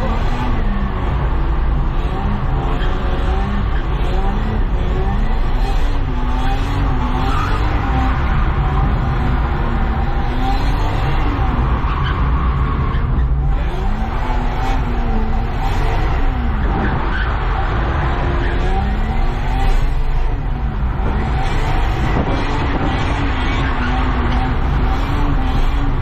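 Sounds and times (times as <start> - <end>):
car engine revving: 0.0 - 26.0
tyres skidding: 0.0 - 26.0.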